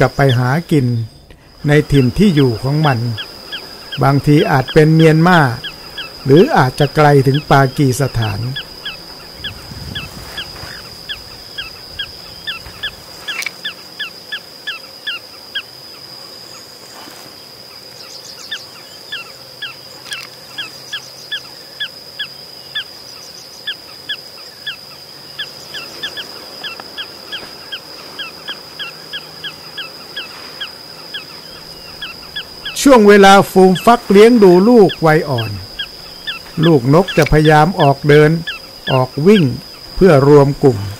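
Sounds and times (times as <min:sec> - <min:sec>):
birds calling sharp sliding notes: 0:00.0 - 0:40.9.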